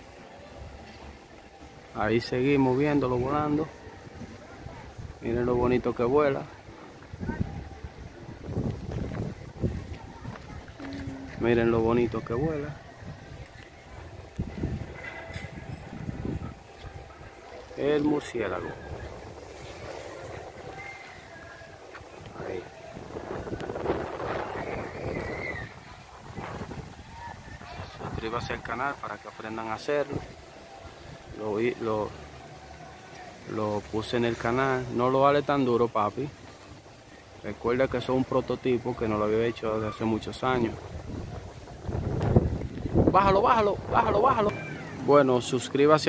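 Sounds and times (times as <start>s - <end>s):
wind rumble on microphone: 3.1s - 28.8s, 40.1s - 45.1s
faint high tone: 9.7s - 12.4s.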